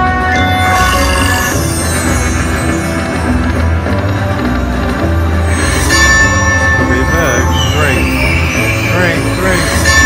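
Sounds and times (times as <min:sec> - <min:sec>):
slot machine bonus music: 0:00.0 - 0:10.0
ringing chime: 0:00.2 - 0:10.0.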